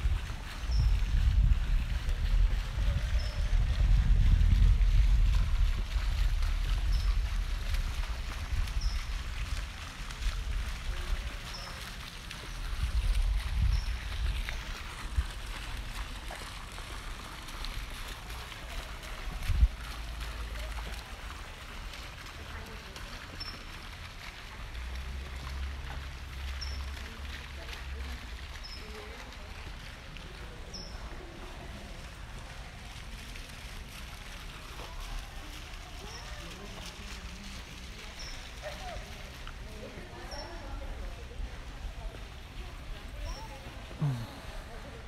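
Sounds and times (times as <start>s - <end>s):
wind buffeting microphone: 0.0s - 11.6s, 12.5s - 20.3s.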